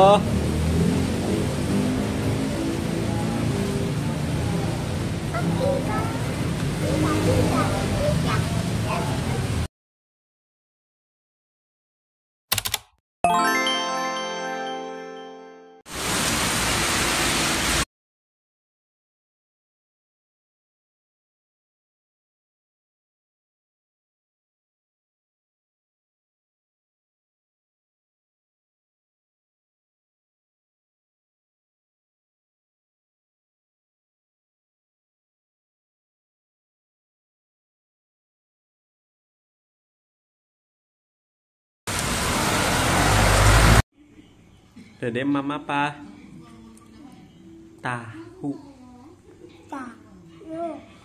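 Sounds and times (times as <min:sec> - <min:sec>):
heavy rain pouring: 0:00.2 - 0:09.7, 0:15.9 - 0:17.9, 0:41.9 - 0:43.8
heavy rain falling: 0:15.9 - 0:17.8, 0:41.9 - 0:43.8.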